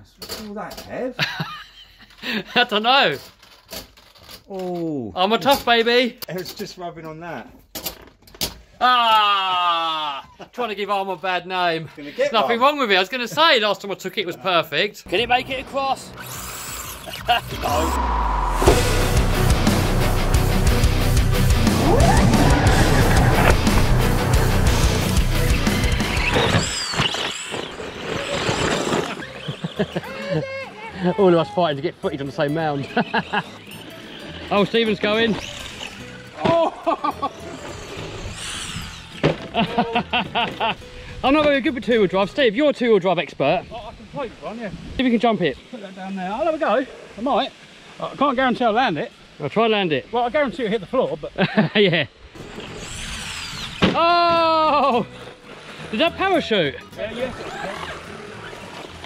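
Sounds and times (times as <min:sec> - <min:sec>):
electric motor whining: 0:16.0 - 0:41.0, 0:52.4 - 0:59.0.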